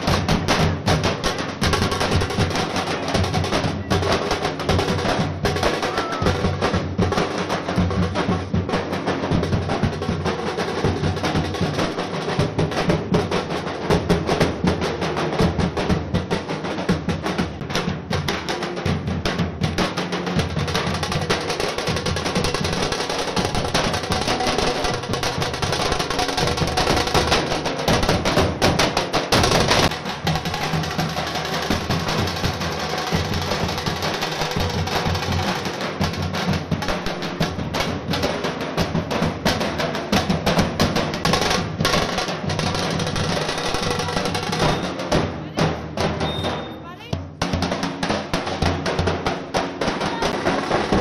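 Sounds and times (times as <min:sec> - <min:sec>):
festive drum music: 0:00.0 - 0:51.0.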